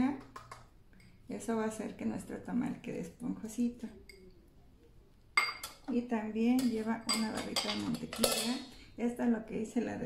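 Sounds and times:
glass cup clinking on metal bowl: 5.4 - 5.9, 6.6 - 8.6.

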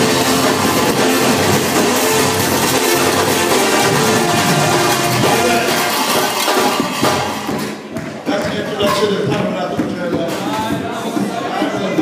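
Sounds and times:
drums playing: 0.0 - 12.0
live church band music: 0.0 - 12.0.

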